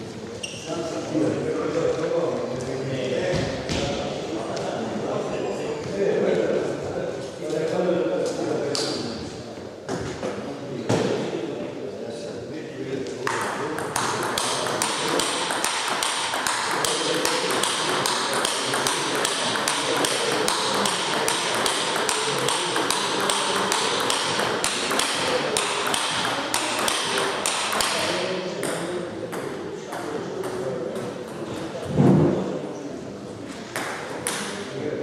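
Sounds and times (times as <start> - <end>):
table tennis ball clicking: 13.3 - 29.5.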